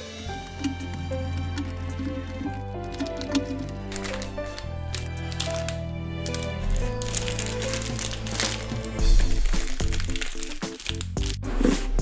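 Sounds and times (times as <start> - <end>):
plastic bags crinkling: 0.2 - 11.7
background music with beat: 8.2 - 12.0.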